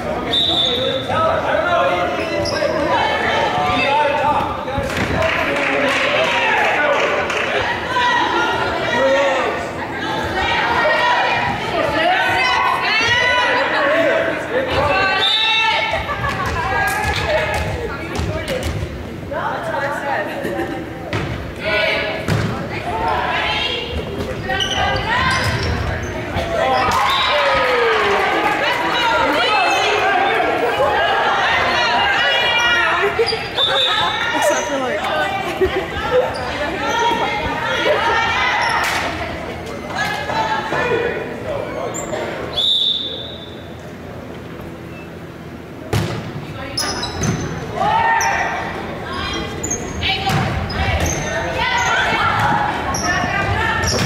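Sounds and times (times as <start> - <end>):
volleyball slaps: 45.9 - 46.4
echoing voices: 47.6 - 54.0
girls and spectators shouting: 47.7 - 50.2.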